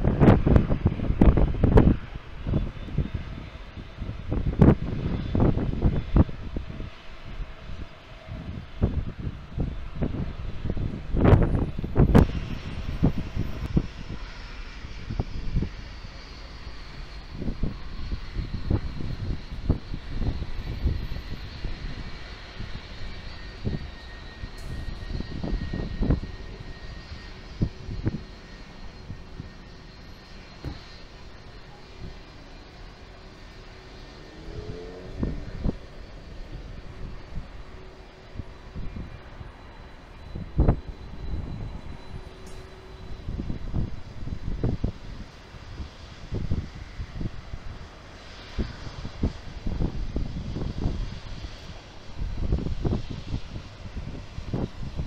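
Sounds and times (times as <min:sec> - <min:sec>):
jet engines rumbling and whining: 0:00.0 - 0:55.0
wind gusts on microphone: 0:00.0 - 0:55.0.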